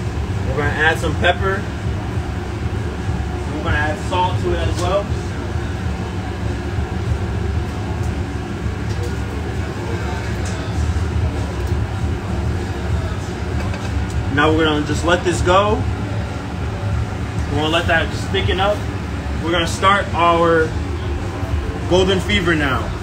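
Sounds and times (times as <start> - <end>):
low droning hum: 0.0 - 23.0.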